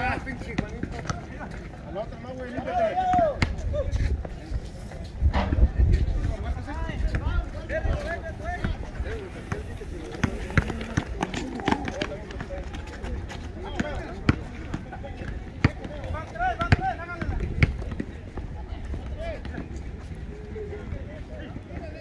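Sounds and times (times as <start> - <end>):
running footsteps: 6.0 - 20.7
indistinct voices: 8.0 - 14.6
basketball bouncing: 13.7 - 18.1.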